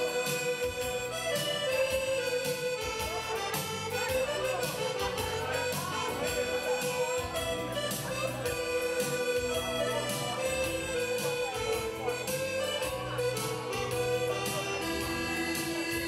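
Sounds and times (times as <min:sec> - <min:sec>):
held lead melody: 0:00.0 - 0:16.0.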